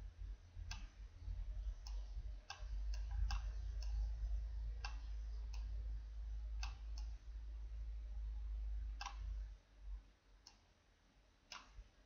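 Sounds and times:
steady low hum: 0.0 - 12.0
computer mouse clicking: 1.8 - 4.0, 4.8 - 5.7, 6.6 - 7.2, 9.0 - 9.3, 10.4 - 10.6, 11.5 - 11.8.

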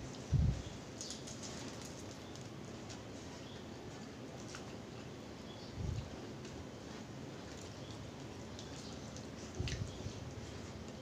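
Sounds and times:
soft clicks and crackles of eating: 0.9 - 5.1, 6.0 - 11.0.

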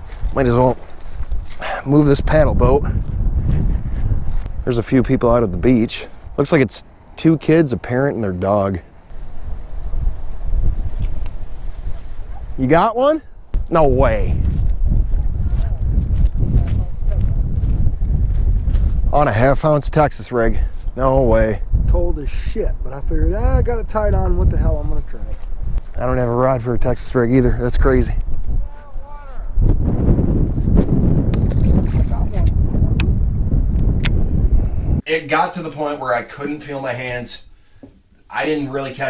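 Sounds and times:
wind buffeting microphone: 0.0 - 7.2, 8.8 - 35.0
faint speech: 28.6 - 29.6.

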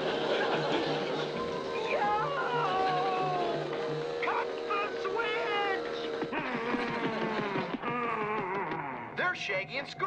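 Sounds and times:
fast chase music: 0.0 - 8.0
cartoon mower motor: 0.0 - 9.0.

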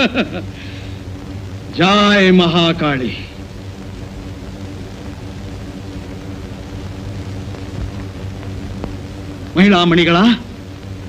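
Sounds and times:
low background music drone: 0.0 - 11.0
faint ticks: 3.8 - 9.6.

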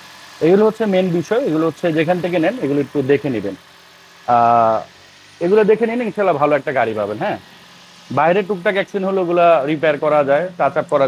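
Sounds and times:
man talking: 0.4 - 3.6, 4.3 - 7.4, 8.1 - 11.0.

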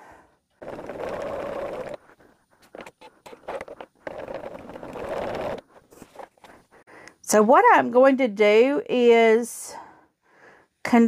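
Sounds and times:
sewing machine stitching fabric: 0.6 - 2.0, 2.8 - 6.2.

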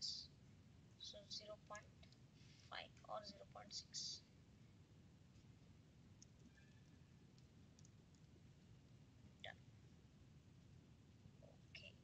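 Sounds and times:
faint mouse and key clicks: 6.2 - 8.4.

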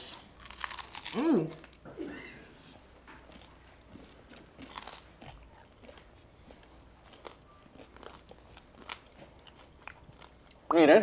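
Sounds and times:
chewing crunchy rice cake: 0.4 - 1.8, 3.3 - 10.7.

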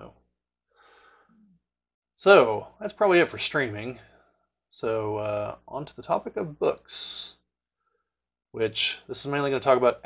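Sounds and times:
man breathing in: 0.7 - 1.5.

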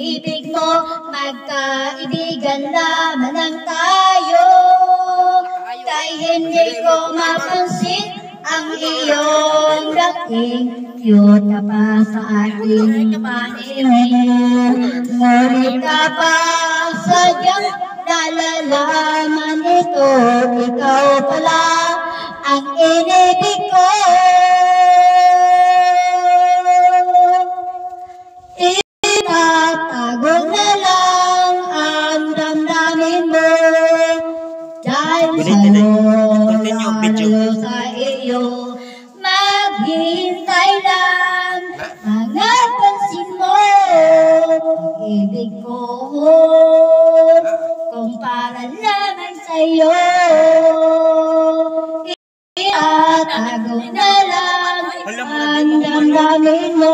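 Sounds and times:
woman singing slow song: 0.0 - 27.9, 28.6 - 56.9
woman singing a long note: 35.1 - 38.4.

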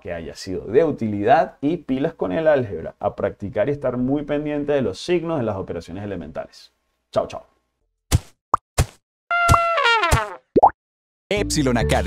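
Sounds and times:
cartoon horn toot sliding down: 9.3 - 10.4.

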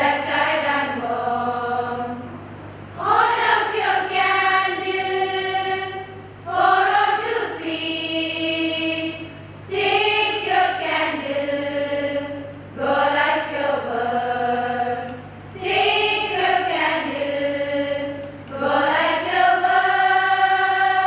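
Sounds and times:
choir of women singing: 0.0 - 2.3, 2.9 - 21.0.

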